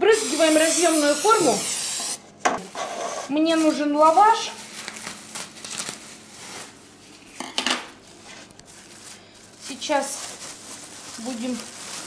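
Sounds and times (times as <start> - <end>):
plastic pack rustling: 3.5 - 12.0.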